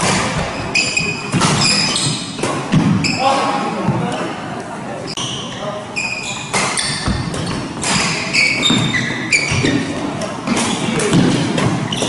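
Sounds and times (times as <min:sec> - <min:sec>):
court shoes squeaking: 0:00.0 - 0:04.4, 0:05.0 - 0:12.0
rackets striking shuttlecock: 0:06.4 - 0:11.9.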